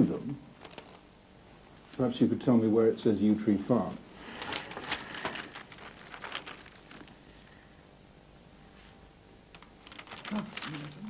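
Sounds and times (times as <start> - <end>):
paper rustling: 0.6 - 1.0, 4.2 - 7.2, 9.5 - 11.0.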